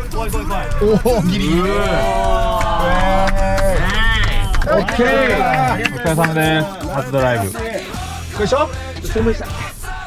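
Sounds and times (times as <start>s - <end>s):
men's long drawn-out cries: 0.6s - 6.1s.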